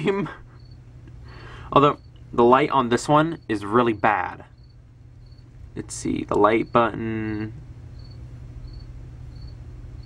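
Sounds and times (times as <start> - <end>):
insect chirping: 0.0 - 10.0
steady low hum: 0.0 - 10.0.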